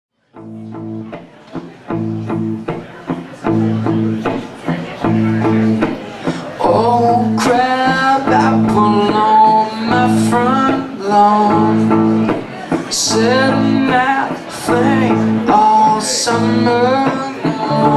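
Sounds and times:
electric guitar strumming chords: 0.3s - 17.9s
man singing: 5.1s - 17.9s.

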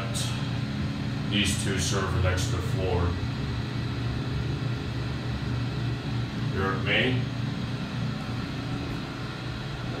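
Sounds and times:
elevator hum: 0.0s - 10.0s.

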